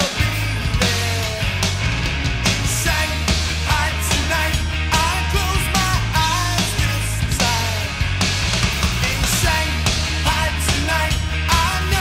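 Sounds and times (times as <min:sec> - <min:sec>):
electric guitars: 0:00.0 - 0:12.0
steady bass line: 0:00.0 - 0:12.0.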